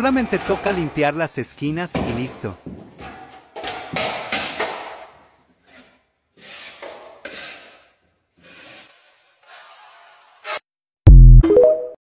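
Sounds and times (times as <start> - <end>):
drywall tool scraping compound: 0.0 - 1.2, 5.4 - 10.6.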